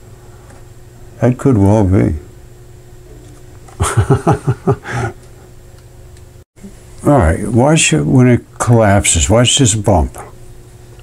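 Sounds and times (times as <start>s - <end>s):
man laughing: 3.8s - 5.4s.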